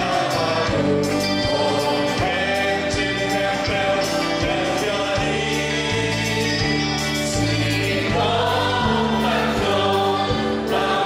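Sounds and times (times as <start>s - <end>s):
male and female singers: 0.0s - 11.0s
worship band playing a hymn: 0.0s - 11.0s.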